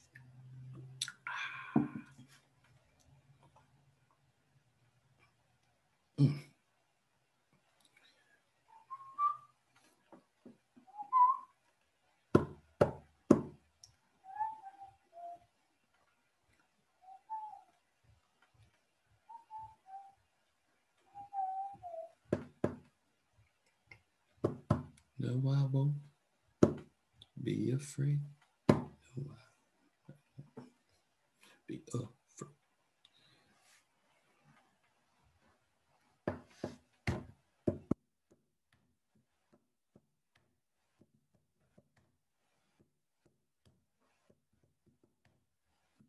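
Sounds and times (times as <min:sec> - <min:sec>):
soft whistle-like notes: 0:08.7 - 0:09.6, 0:10.9 - 0:11.6, 0:14.2 - 0:15.7, 0:17.0 - 0:17.9, 0:19.2 - 0:20.3, 0:21.0 - 0:22.2.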